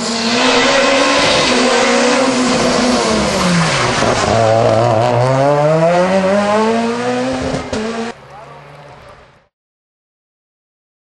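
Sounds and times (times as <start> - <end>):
rally car engine revving: 0.0 - 9.4.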